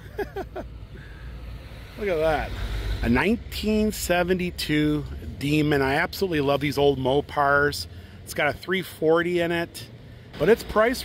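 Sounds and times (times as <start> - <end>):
person laughing: 0.0 - 0.7
street traffic rumble: 0.0 - 11.0.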